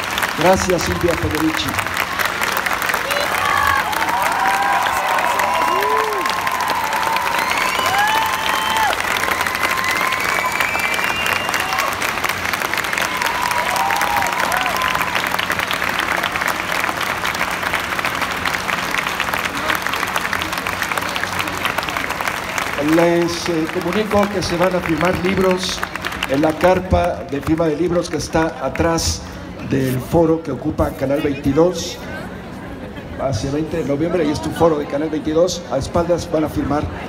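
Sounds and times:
audience applauding: 0.0 - 29.0.

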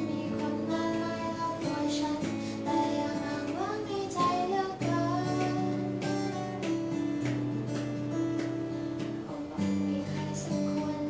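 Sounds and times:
woman singing: 0.0 - 7.0, 9.2 - 11.0
strummed acoustic guitar: 0.0 - 11.0.

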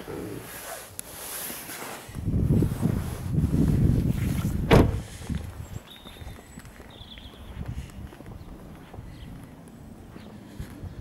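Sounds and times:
microphone handling rumble: 2.1 - 5.8.

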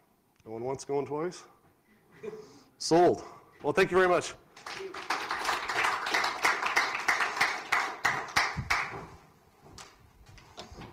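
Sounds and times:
audience applauding: 4.6 - 9.0.

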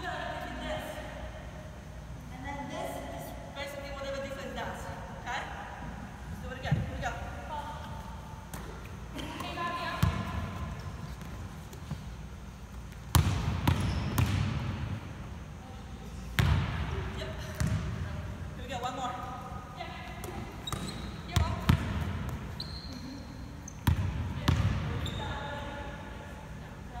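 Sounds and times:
basketball bouncing on wooden floor: 9.4 - 10.9, 13.1 - 14.7, 17.6 - 18.0, 23.8 - 25.2.

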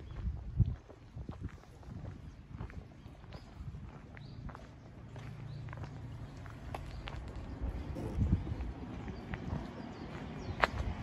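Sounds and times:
footsteps crunching on gravel: 0.0 - 7.6, 8.2 - 11.0.

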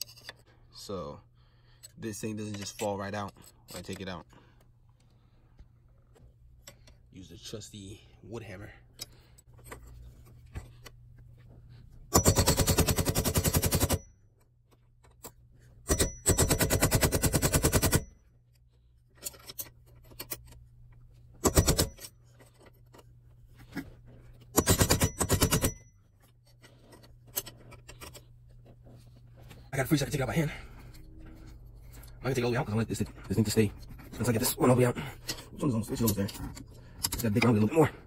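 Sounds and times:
quiet handling: 26.0 - 37.9.

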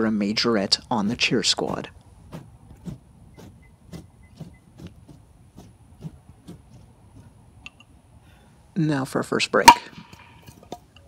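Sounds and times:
nunchaku whooshing through air: 1.1 - 7.4.

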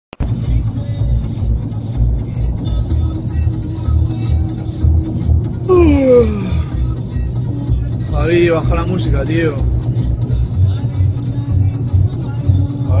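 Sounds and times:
music with heavy bass beat: 0.2 - 13.0.

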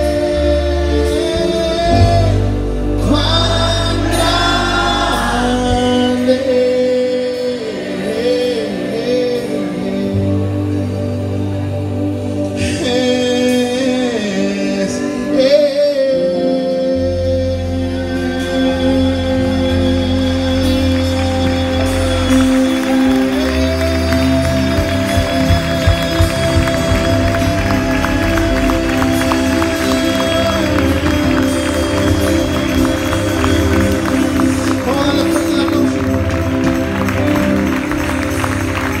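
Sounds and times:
drums: 0.0 - 8.6, 17.6 - 39.0
band playing held notes: 0.0 - 39.0
bass guitar: 0.0 - 39.0.

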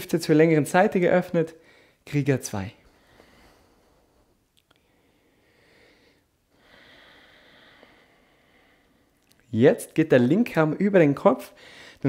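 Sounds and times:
faint breathing: 1.6 - 2.0, 2.8 - 9.2, 11.5 - 12.0.

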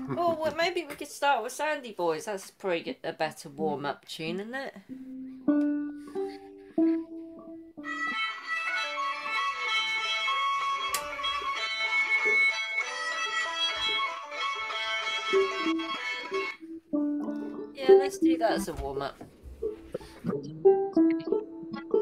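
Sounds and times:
plucked string instrument notes: 4.9 - 22.0.

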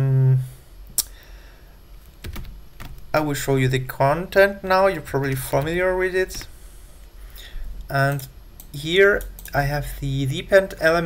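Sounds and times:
computer keyboard keystrokes: 2.2 - 3.0.

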